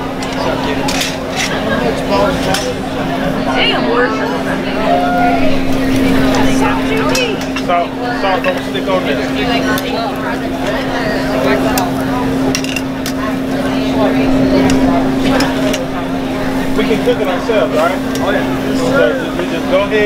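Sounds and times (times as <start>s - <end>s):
steady low hum: 0.0s - 20.0s
plates and cutlery clinking: 0.2s - 2.9s, 11.7s - 13.3s.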